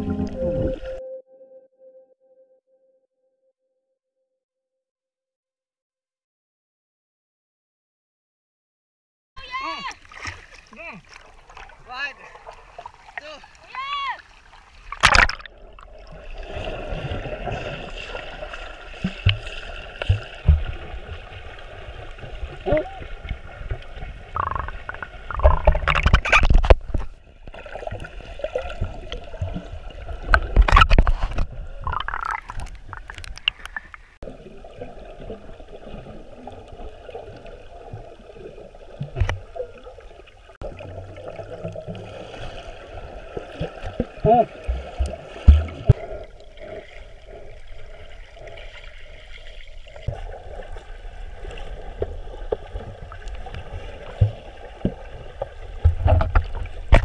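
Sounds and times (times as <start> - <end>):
water splashing and sloshing: 9.4 - 57.0
muffled underwater water noise: 9.8 - 57.0
bubbles gurgling: 14.9 - 26.5, 31.6 - 48.7
faint gurgling: 22.5 - 23.4, 24.3 - 26.6.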